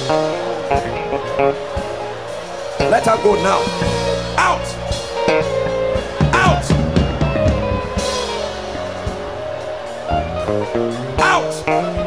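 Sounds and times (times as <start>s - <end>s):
drum strokes: 0.0s - 12.0s
worship band instrumental: 0.0s - 12.0s.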